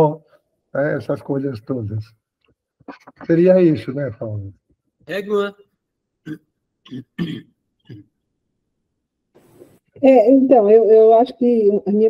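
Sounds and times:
person clearing throat: 6.3 - 8.1.

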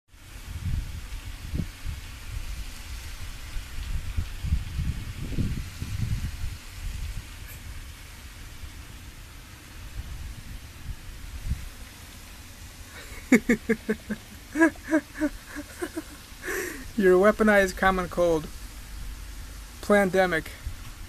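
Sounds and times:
outdoor hiss: 0.1 - 21.0
wind buffeting microphone: 0.2 - 12.0.

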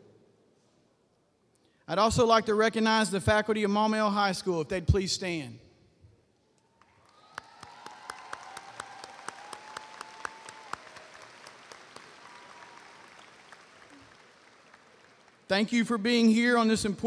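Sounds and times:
audience applause: 6.8 - 15.5.

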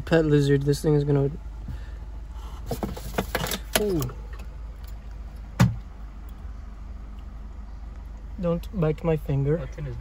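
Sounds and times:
car interior hum: 0.0 - 10.0.

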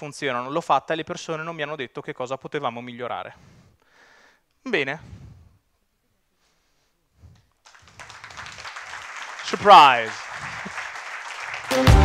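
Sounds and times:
audience applauding: 7.6 - 12.0.

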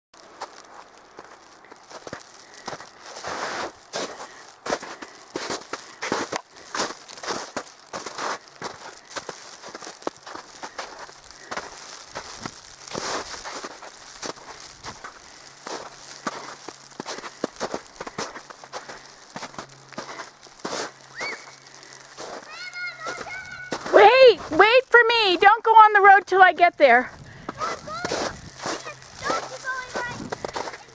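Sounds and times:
footsteps crunching through snow: 0.2 - 30.9
twigs and dry grass rustling: 0.2 - 30.9.

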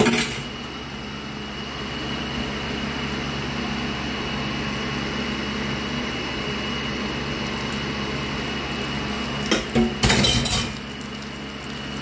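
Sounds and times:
hot oil sizzling: 6.4 - 12.0.

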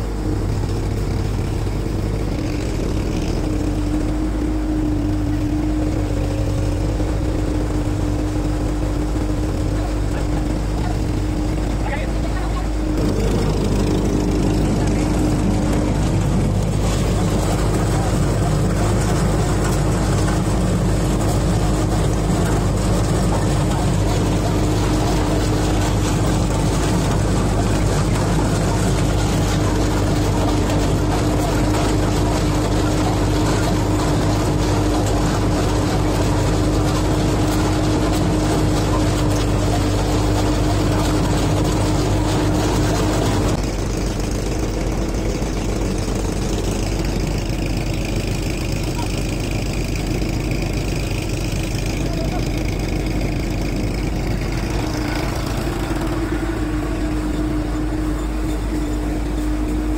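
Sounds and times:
thresher machine drone: 0.0 - 59.9.

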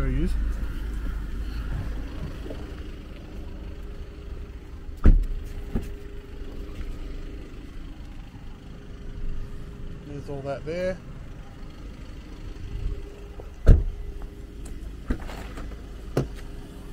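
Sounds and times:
low steady rumble: 0.0 - 16.9
car door shutting: 5.0 - 6.1, 13.3 - 16.6.

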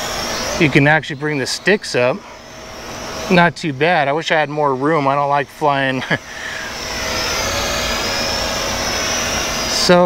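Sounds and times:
quadcopter propellers buzzing: 0.0 - 10.0.

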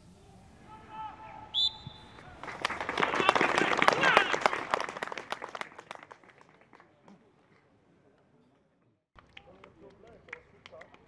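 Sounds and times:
referee's whistle: 0.7 - 2.3
applause: 2.2 - 7.0, 9.2 - 11.0.

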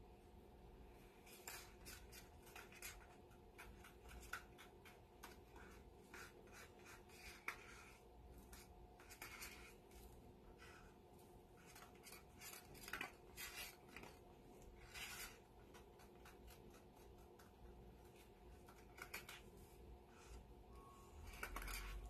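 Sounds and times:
paint stick scraping plastic cup: 1.3 - 10.9, 21.2 - 22.0.

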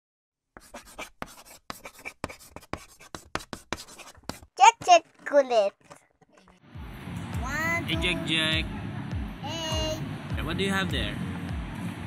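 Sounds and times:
chalk scratching on blackboard: 0.6 - 6.0.

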